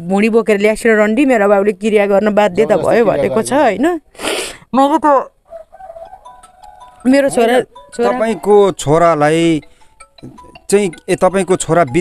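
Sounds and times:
sharp gasping breath: 0:04.1 - 0:04.7, 0:09.6 - 0:10.1.

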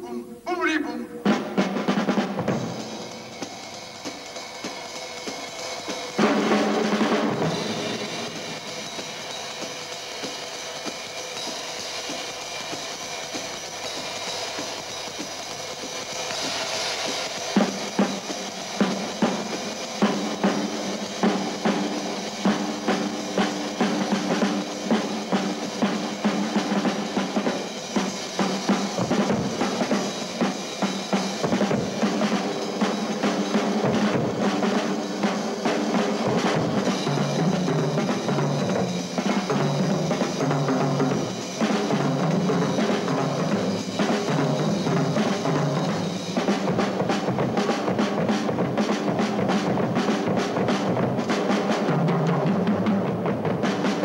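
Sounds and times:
drum kits playing: 0:00.0 - 0:54.0
cymbal crash: 0:01.2 - 0:51.4.

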